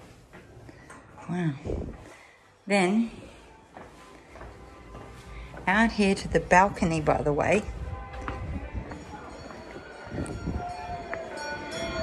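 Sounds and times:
low rumbling town noise: 0:04.1 - 0:12.0
wind on microphone: 0:10.1 - 0:11.0.

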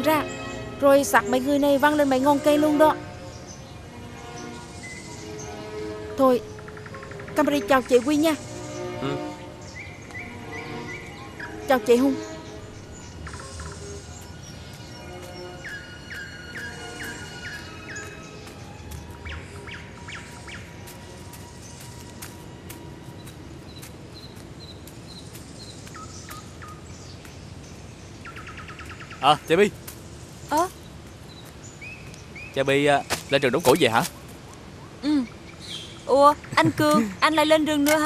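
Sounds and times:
lower bird notes: 0:00.0 - 0:33.8
low outdoor hiss: 0:00.0 - 0:38.0
soft sustained music score: 0:00.0 - 0:38.0
high bird chirps: 0:04.4 - 0:22.5, 0:23.1 - 0:33.8, 0:34.7 - 0:37.5
fast bird trill: 0:09.6 - 0:22.0.

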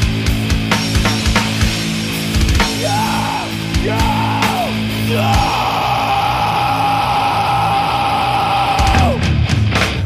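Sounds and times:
low guitar layer: 0:00.0 - 0:10.0.

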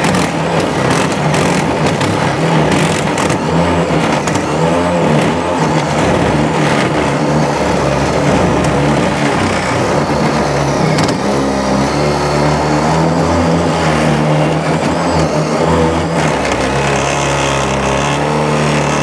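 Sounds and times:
cordless drill running under load: 0:00.0 - 0:19.0.

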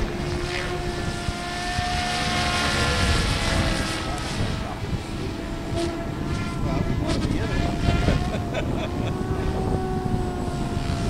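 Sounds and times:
model helicopter rotor whine: 0:00.0 - 0:11.0.

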